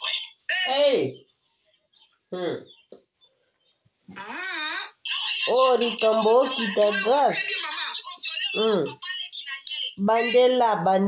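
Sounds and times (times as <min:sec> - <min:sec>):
person vocal sound: 0:02.3 - 0:02.7, 0:08.6 - 0:09.0.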